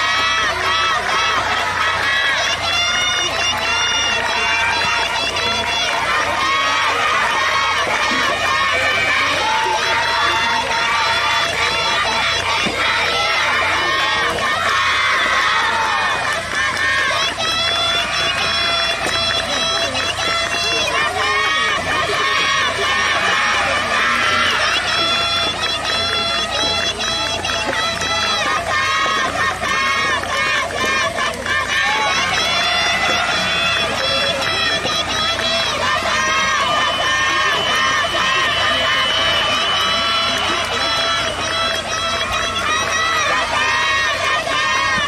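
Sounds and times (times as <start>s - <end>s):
crowd of high-pitched voices shouting: 0.0s - 45.0s.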